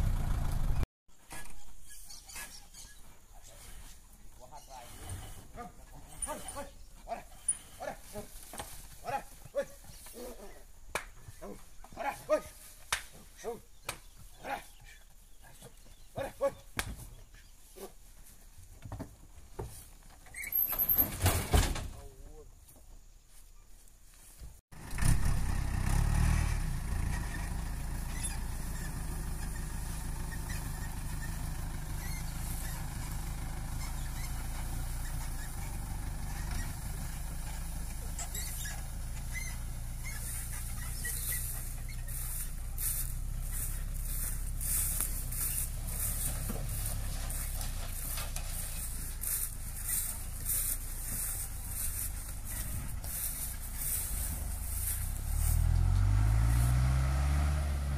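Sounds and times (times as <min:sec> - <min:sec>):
truck engine running: 0:00.0 - 0:00.8, 0:24.8 - 0:57.9.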